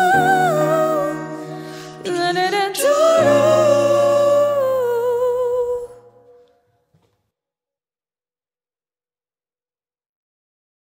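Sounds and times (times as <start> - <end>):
woman singing: 0.0 - 6.5.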